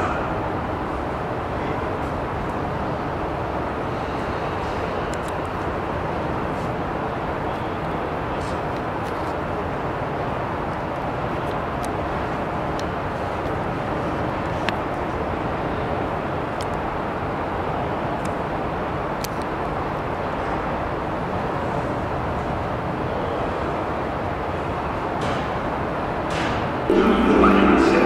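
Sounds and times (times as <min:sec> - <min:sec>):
subway train pulling into station: 0:00.0 - 0:28.0.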